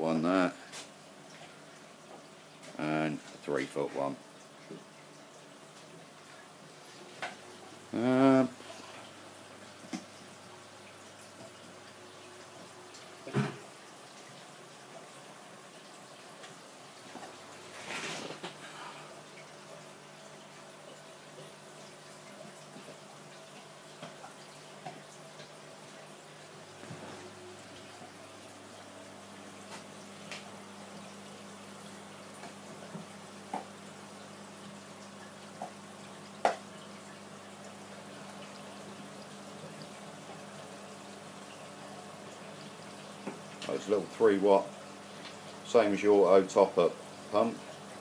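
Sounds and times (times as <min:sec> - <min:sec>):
aquarium air pumps humming: 0:00.0 - 0:48.0
water bubbling and trickling: 0:00.9 - 0:48.0
clicks and drips: 0:20.3 - 0:28.2, 0:35.0 - 0:38.6, 0:45.1 - 0:45.7.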